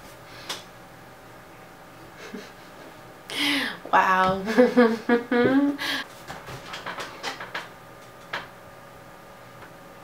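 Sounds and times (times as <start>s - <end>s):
soft breathy laughter: 2.2s - 2.9s.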